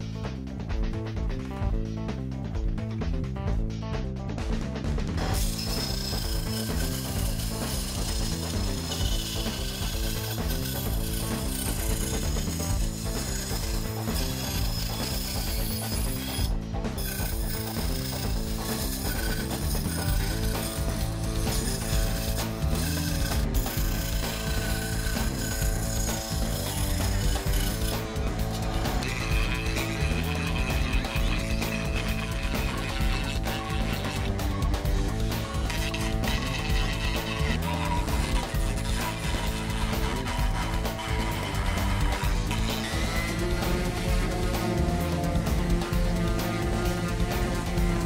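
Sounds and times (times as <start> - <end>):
background music: 0.0 - 48.0
scroll saw cutting wood: 5.1 - 48.0.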